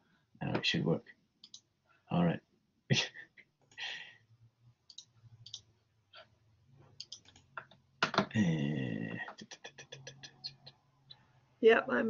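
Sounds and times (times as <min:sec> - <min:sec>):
faint low hum: 0:03.8 - 0:12.0
mouse and keyboard clicks: 0:07.0 - 0:08.2.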